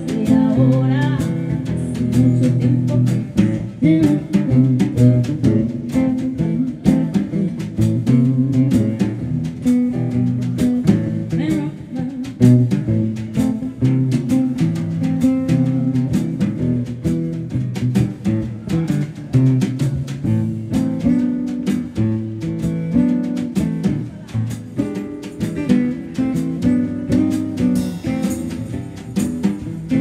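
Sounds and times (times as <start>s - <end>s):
classical guitar playing: 0.0s - 30.0s
drum kit and cymbal hits: 12.7s - 30.0s.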